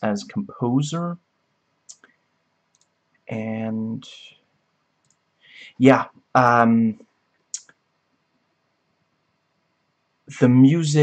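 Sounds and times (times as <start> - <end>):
person speaking: 0.0 - 1.2, 3.3 - 4.3, 5.6 - 7.0, 10.3 - 11.0
faint short clicks: 1.9 - 3.0
tiny ticks: 1.9 - 3.0, 5.0 - 5.2.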